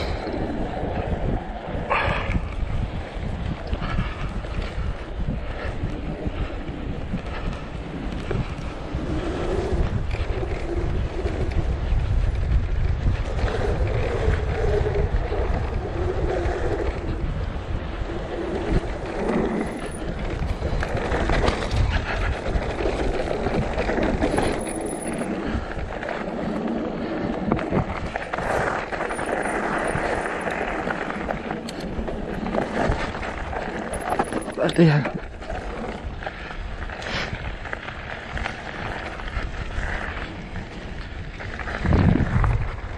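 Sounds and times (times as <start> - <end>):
bike rattling over stones: 0.0 - 42.9
tyre noise on gravel: 0.0 - 42.9
wind buffeting microphone: 0.0 - 42.9.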